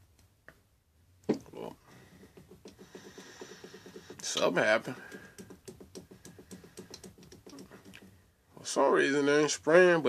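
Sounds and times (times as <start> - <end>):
pump sprayer clicking: 2.6 - 8.0.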